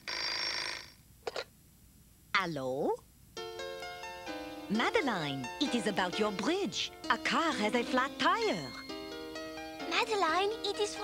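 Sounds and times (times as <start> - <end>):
telephone bell ringing: 0.0 - 1.0.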